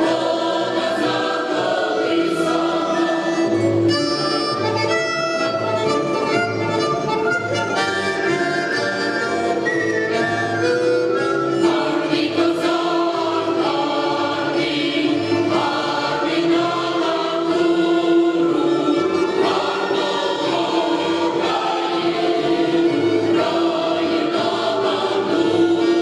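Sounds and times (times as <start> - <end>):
mixed choir singing folk song: 0.0 - 5.4, 9.3 - 26.0
accordion: 0.0 - 26.0
double bass: 3.4 - 11.8.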